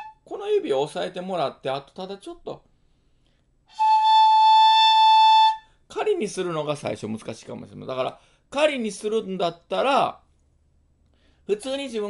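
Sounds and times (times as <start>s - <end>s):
bamboo flute high note: 0.0s - 0.3s, 3.7s - 5.7s.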